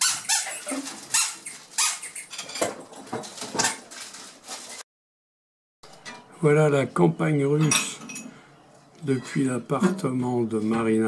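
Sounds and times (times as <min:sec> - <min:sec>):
rubber squeaky ball squeaks: 0:00.0 - 0:02.4.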